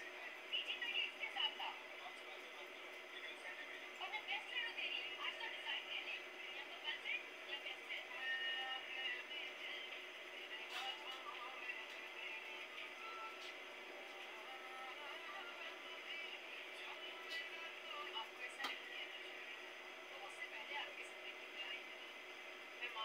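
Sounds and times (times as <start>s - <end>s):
faint indistinct voices: 0.0s - 23.0s
steady hum: 0.0s - 23.0s
background music: 8.8s - 18.1s.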